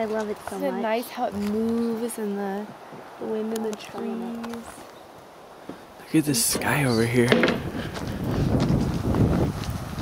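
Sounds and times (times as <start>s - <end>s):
wind buffeting microphone: 6.4s - 10.0s.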